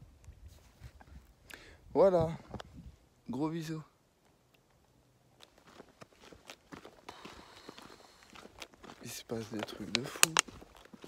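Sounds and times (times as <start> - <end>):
faint footsteps: 4.2 - 11.0.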